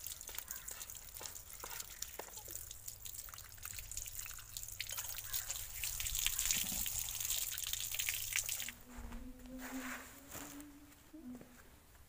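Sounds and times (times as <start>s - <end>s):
water splashing on concrete floor: 0.0s - 8.8s.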